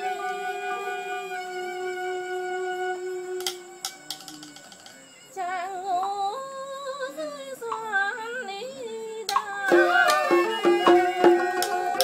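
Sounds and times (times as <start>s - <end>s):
woman singing a lullaby with vibrato: 0.0s - 12.0s.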